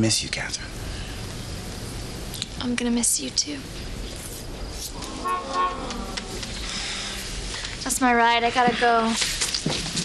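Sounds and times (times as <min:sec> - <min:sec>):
car horn honking: 0:05.0 - 0:06.4.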